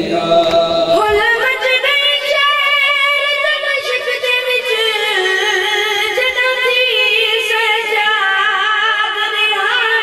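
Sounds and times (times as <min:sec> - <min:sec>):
boy chanting a lament: 0:00.0 - 0:10.0.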